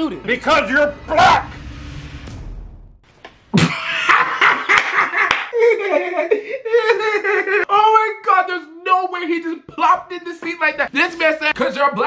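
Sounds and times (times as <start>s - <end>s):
man laughing hard: 3.6s - 7.7s.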